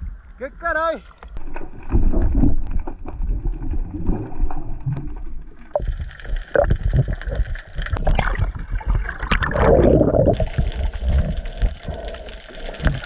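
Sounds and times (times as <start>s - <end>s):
low rumbling of water buffeting: 1.1s - 13.0s.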